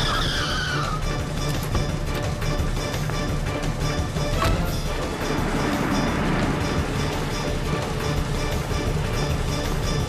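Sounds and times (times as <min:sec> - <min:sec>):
car tyres squealing: 0:00.0 - 0:01.1
background music: 0:00.0 - 0:10.0.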